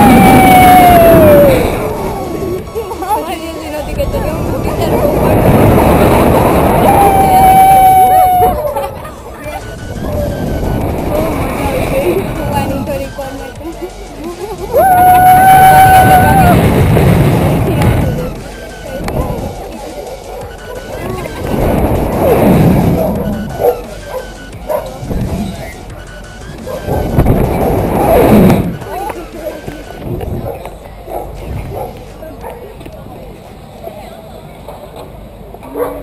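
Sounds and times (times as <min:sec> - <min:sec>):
woman screaming: 0:00.0 - 0:01.6, 0:06.8 - 0:08.7, 0:14.7 - 0:16.6
wind on microphone: 0:00.0 - 0:13.6, 0:14.6 - 0:25.9, 0:26.5 - 0:33.4.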